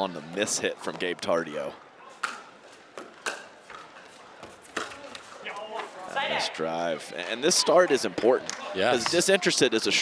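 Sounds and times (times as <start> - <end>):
paddles hitting plastic ball: 2.2 - 5.9.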